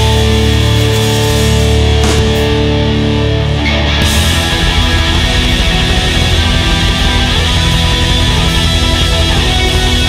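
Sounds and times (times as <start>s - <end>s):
bass guitar: 0.0s - 10.0s
distorted electric guitar: 0.0s - 10.0s
drums: 0.0s - 10.0s
keyboards: 0.0s - 10.0s.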